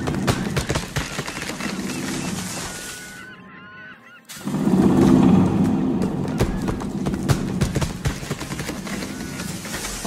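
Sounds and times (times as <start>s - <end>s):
sharp cracks and knocks: 0.0s - 2.0s.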